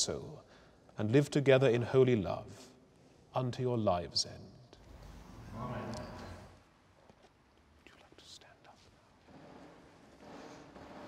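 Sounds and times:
faint breathy whisper: 7.8 - 9.2.

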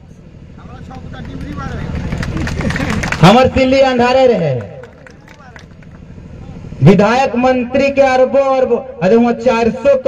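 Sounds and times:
distant voices: 0.0 - 10.0
man speaking over loudspeaker: 3.2 - 5.6, 6.4 - 10.0.

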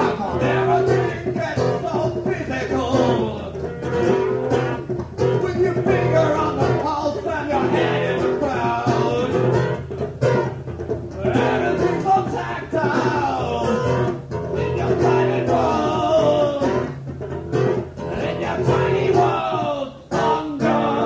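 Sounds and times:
man singing: 0.0 - 9.8, 11.2 - 17.0, 18.0 - 21.0
guitar: 0.0 - 21.0.

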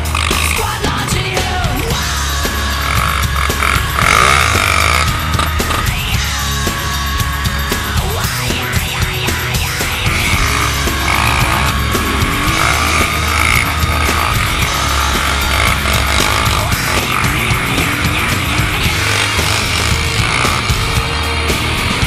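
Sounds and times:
loud heavy rock music: 0.0 - 22.0.

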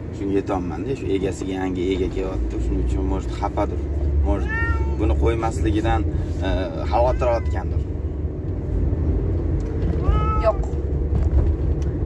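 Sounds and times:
car low rumble: 0.0 - 12.0
man talking: 0.2 - 7.9.

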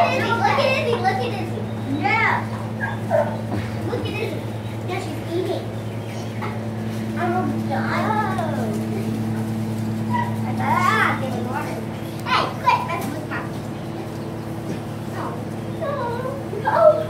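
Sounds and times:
children squealing and calling: 0.0 - 6.6, 10.1 - 17.0
steady low hum: 0.0 - 17.0.

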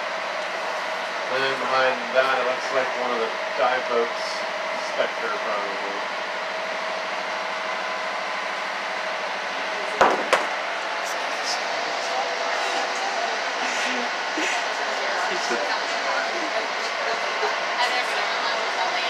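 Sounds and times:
boat engine humming: 0.0 - 19.0
sharp knocks: 10.0 - 10.6.

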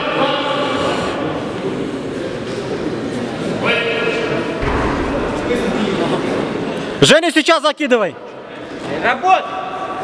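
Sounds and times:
reverberant sports hall noise: 0.0 - 10.0.

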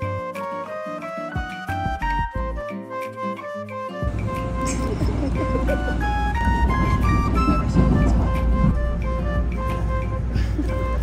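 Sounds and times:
background music with stepping melody: 0.0 - 11.0
low ambient rumble: 4.1 - 11.0.

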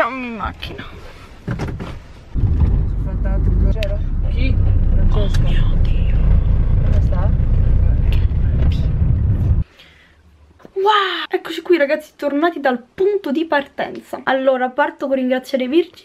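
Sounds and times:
car cabin rumble: 2.4 - 9.6.

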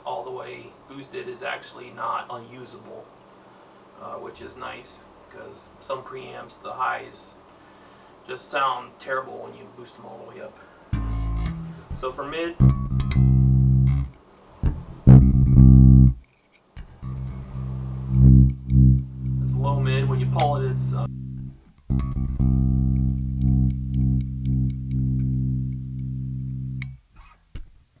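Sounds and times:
electric bass notes: 10.9 - 16.2, 16.8 - 27.7.

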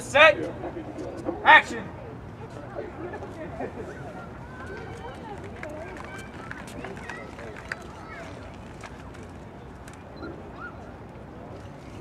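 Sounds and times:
background chatter: 0.0 - 12.0
footsteps on pavement: 4.4 - 10.0.

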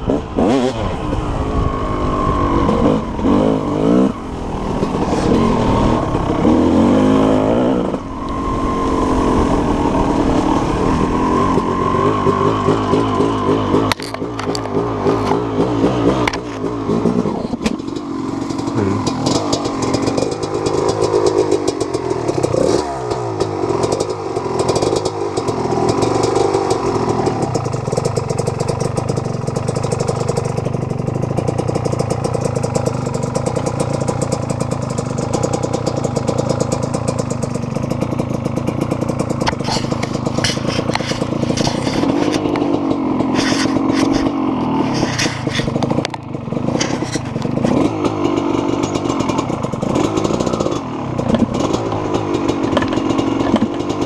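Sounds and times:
dirt bike engine revving: 0.0 - 30.9, 32.3 - 54.0
rattles: 35.2 - 54.0.

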